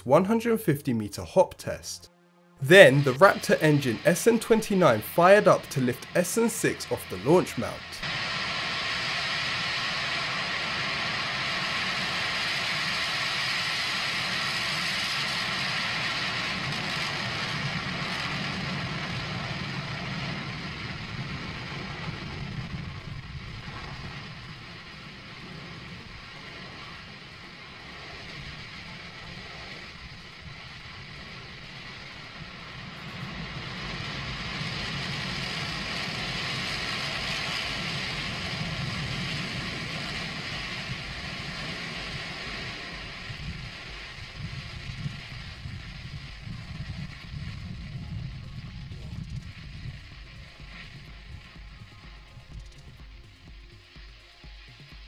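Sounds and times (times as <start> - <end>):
rocket engine roaring: 0.0 - 51.8.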